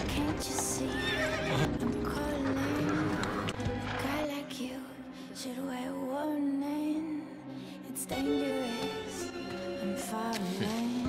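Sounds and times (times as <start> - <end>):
hooves clip-clopping: 0.0 - 4.0
dramatic background music: 0.0 - 11.0
horse whinnying: 0.9 - 1.8.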